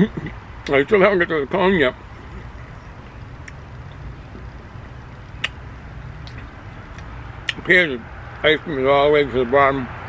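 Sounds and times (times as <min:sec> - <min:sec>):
low outdoor rumble: 0:00.0 - 0:10.0
man chewing: 0:02.1 - 0:07.6.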